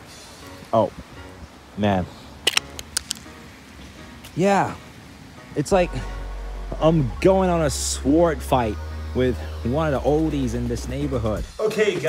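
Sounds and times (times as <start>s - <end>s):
sharp clicks and taps: 2.5s - 3.3s.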